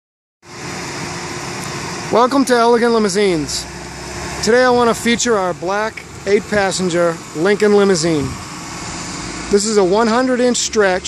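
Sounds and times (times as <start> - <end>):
steady machine hum: 0.5 - 11.0.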